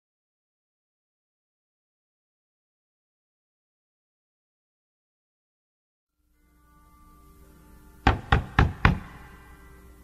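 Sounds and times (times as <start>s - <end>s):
knocks on a door: 8.1s - 9.2s.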